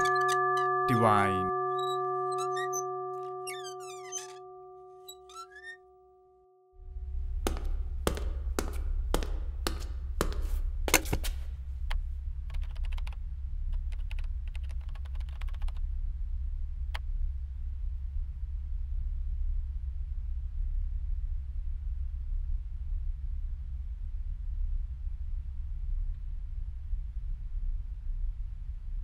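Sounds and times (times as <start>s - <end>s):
held musical chord: 0.0s - 5.1s
high chirps: 0.0s - 5.8s
steady low hum: 6.8s - 14.5s
typing on laptop keyboard: 12.5s - 13.2s, 13.8s - 15.8s.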